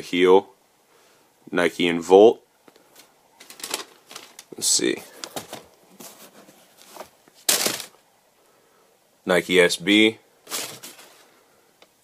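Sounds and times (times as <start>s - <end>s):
sneaker box paper rustling: 3.4s - 8.0s, 10.5s - 11.3s.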